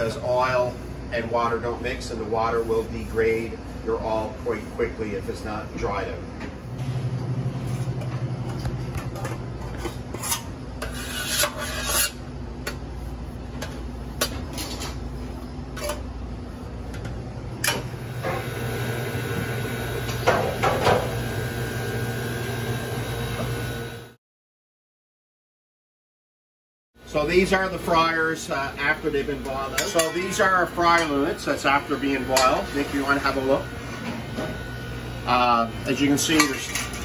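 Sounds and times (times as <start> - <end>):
towel wiping metal vat: 0.0 - 5.5.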